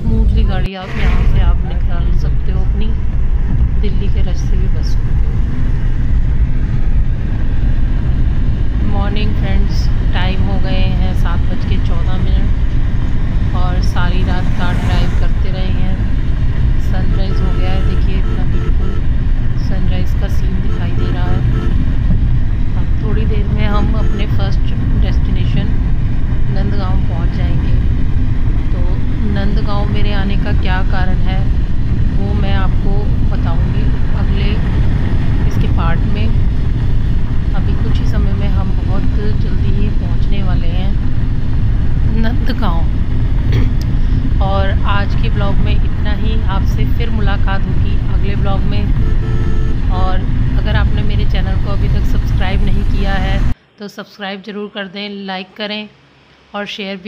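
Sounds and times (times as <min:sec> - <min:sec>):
people talking: 0:00.0 - 0:05.4, 0:08.8 - 0:12.6, 0:13.5 - 0:16.2, 0:16.8 - 0:19.0, 0:19.6 - 0:21.8, 0:22.8 - 0:25.8, 0:26.5 - 0:27.8, 0:28.7 - 0:31.5, 0:32.1 - 0:34.7, 0:35.4 - 0:36.4, 0:37.5 - 0:41.0, 0:42.1 - 0:49.1, 0:49.9 - 0:56.0, 0:56.6 - 0:57.0
car road and engine rumble: 0:00.0 - 0:53.8.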